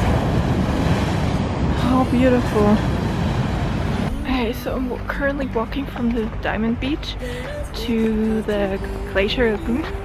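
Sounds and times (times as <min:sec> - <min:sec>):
heavy surf breaking on beach: 0:00.0 - 0:04.5.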